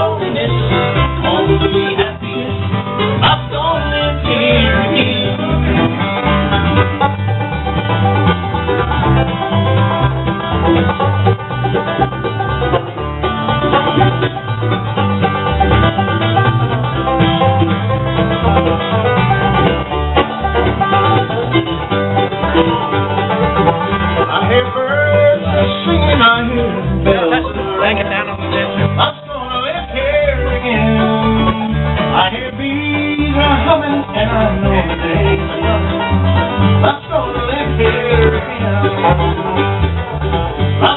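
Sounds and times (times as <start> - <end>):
banjo: 0.0 - 40.9
mandolin: 0.0 - 40.9
upright bass: 0.0 - 40.9.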